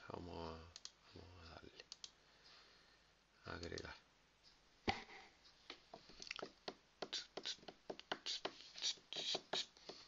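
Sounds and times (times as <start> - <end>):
light irregular clicks and ticks: 0.2 - 2.8, 3.4 - 4.6.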